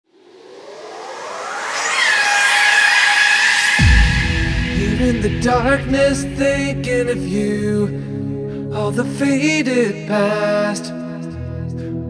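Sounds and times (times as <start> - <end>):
synth noise sweep: 0.0 - 8.0
upward gliding synth pitches: 0.1 - 8.4.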